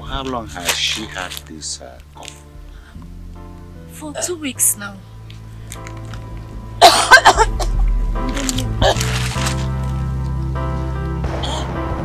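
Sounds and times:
soft background music: 0.0 - 12.0
woman coughing hard: 6.8 - 7.8, 8.6 - 9.1.

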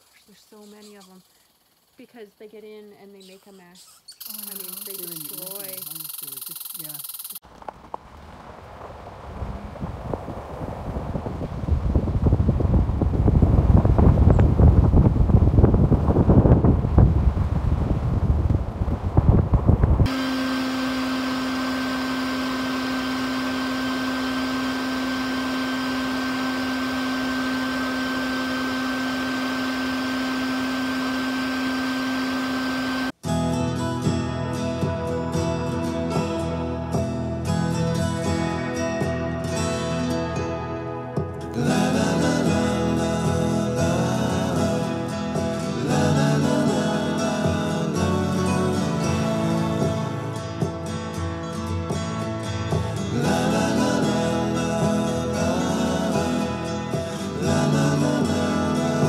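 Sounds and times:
crackling low rumble: 7.4 - 20.1
vacuum motor humming and whining: 20.0 - 33.2, 52.7 - 59.0.

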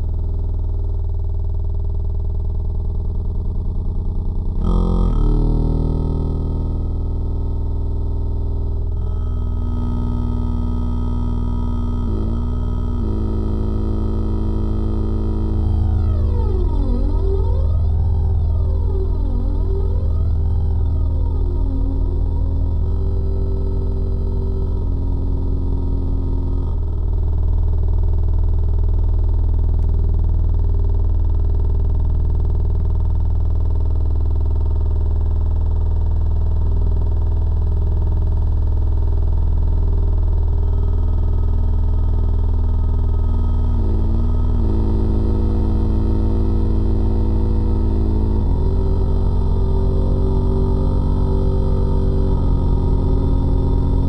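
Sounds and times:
synthesizer music with bass drone: 2.1 - 33.6, 35.2 - 54.0.

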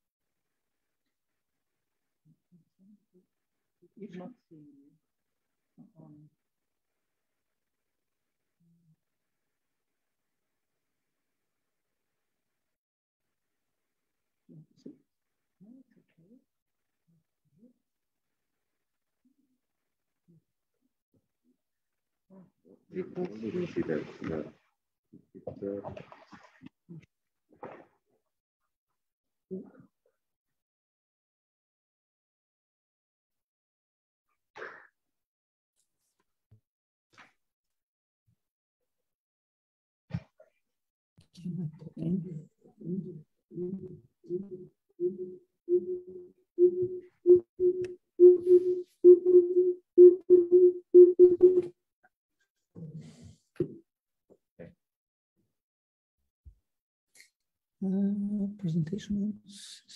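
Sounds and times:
steady tone in short bursts: 45.0 - 51.7.

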